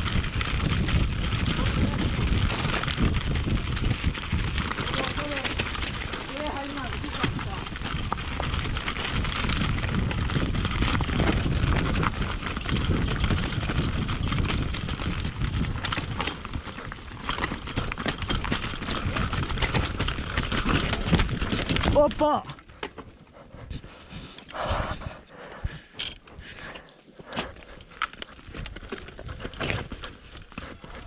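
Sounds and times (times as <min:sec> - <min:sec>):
wind buffeting microphone: 0:00.0 - 0:22.2
tyres crunching over stones: 0:00.0 - 0:23.0, 0:27.2 - 0:31.0
bike rattling and knocking: 0:00.0 - 0:23.3, 0:27.2 - 0:31.0.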